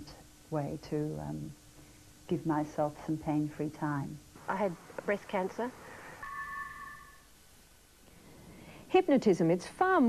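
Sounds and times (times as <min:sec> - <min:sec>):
electronic two-tone chime: 0:06.2 - 0:07.2.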